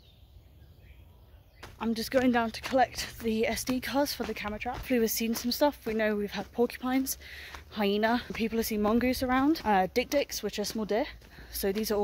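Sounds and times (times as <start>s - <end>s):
distant bird chirps: 0.0s - 4.5s
woman talking: 1.8s - 12.0s.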